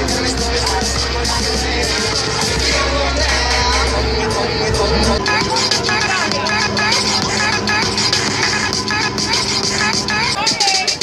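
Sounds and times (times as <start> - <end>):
dance music with vocals: 0.0 - 11.0.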